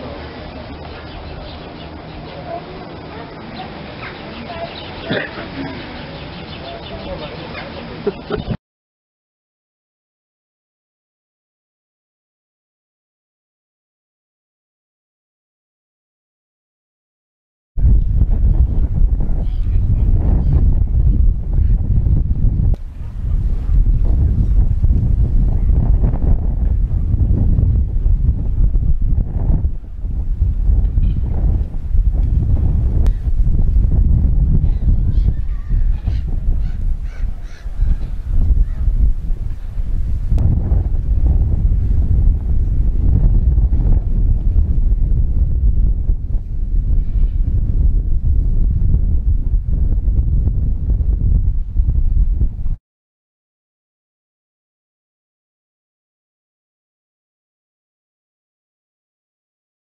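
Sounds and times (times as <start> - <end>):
gulls calling faintly: 0.0 - 8.6, 34.6 - 39.8
wind buffeting microphone: 17.8 - 52.8.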